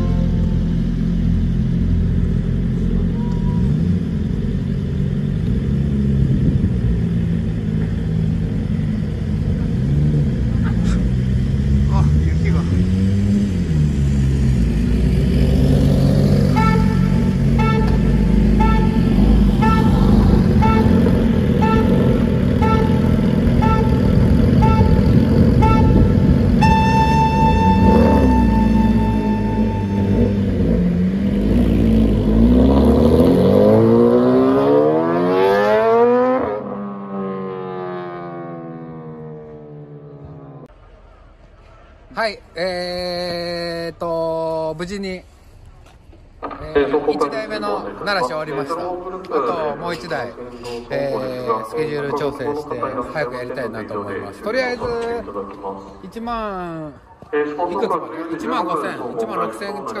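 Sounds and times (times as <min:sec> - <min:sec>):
long steady tone: 0:00.0 - 0:01.6, 0:16.6 - 0:31.0
motorcycle engines idling: 0:00.0 - 0:32.5, 0:37.4 - 1:00.0
throttle blips: 0:23.6 - 0:30.5
electronic countdown beeps: 0:26.6 - 0:30.4.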